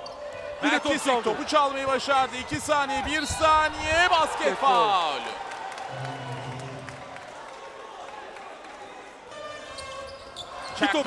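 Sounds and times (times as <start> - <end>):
arena crowd voices: 0.0 - 9.4.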